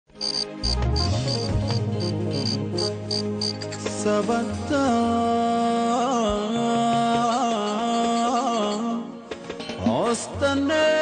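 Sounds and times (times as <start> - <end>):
crickets chirping: 0.2 - 3.7.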